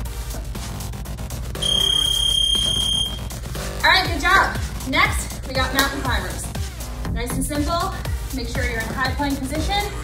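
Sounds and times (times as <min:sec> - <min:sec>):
electronic background music: 0:00.0 - 0:10.0
interval timer long high beep: 0:01.6 - 0:03.3.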